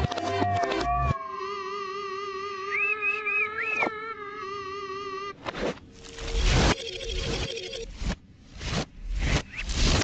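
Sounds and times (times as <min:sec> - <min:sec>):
cartoon cat wailing: 0:00.3 - 0:02.8.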